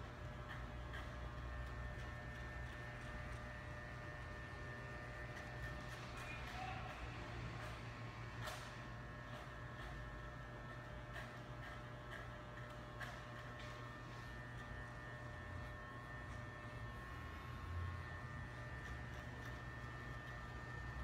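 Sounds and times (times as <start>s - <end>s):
electric hair clipper buzzing: 0.0s - 21.0s.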